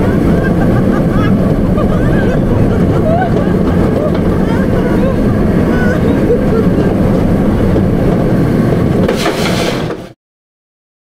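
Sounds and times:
air rushing on microphone: 0.0 - 10.2
roller coaster wheels rumbling: 0.0 - 10.2
faint voices: 2.0 - 7.3.

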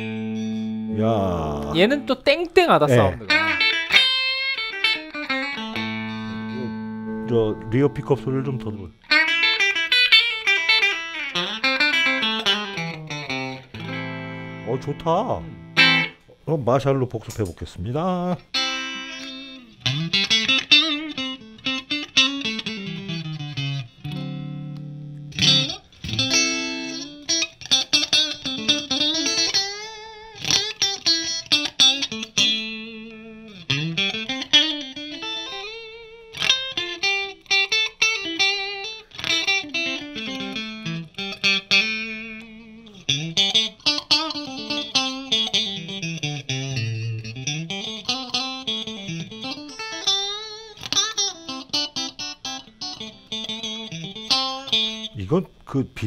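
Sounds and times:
clean electric guitar playing: 0.0 - 2.2, 2.9 - 16.4, 18.3 - 55.5.

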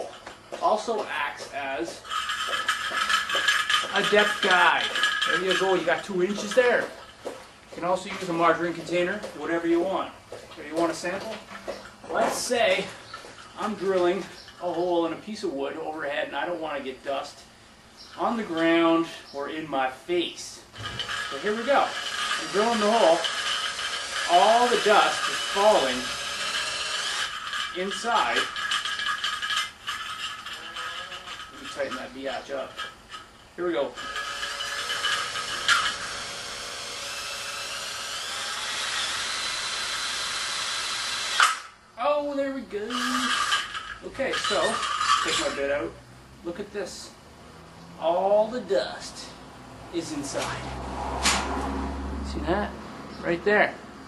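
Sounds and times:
metal can rattling and clinking: 1.9 - 7.2, 27.3 - 33.3
drill whine: 20.8 - 31.8, 33.9 - 41.7, 42.8 - 45.6
person muttering: 42.9 - 43.4.

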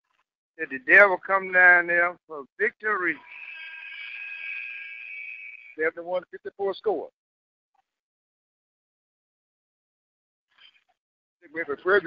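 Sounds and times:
sustained high tones: 3.0 - 5.9.

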